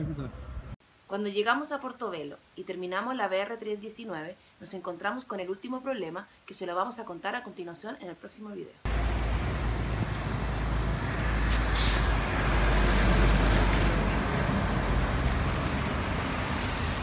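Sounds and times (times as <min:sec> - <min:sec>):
street traffic: 0:00.0 - 0:00.8, 0:08.9 - 0:17.0
truck engine rumble: 0:08.9 - 0:17.0
short sharp hiss: 0:11.0 - 0:12.2.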